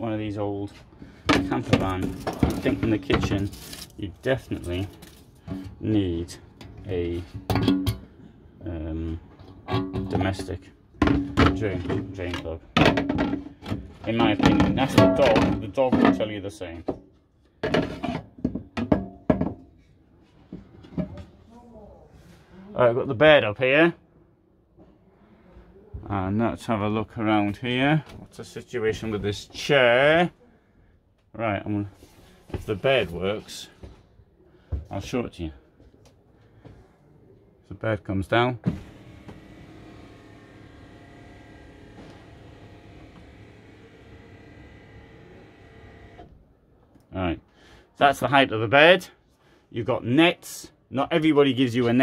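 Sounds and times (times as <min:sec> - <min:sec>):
electric motor humming: 0:38.8 - 0:46.3.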